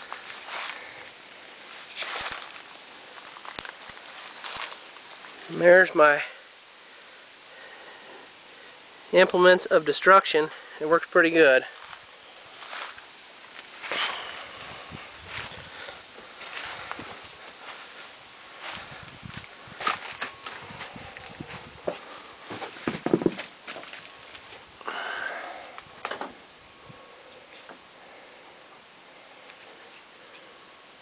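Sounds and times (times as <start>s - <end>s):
footsteps crunching dry leaves: 0.0s - 6.0s, 11.2s - 24.7s
leaves rustling and clicking: 0.0s - 28.3s, 29.2s - 30.6s.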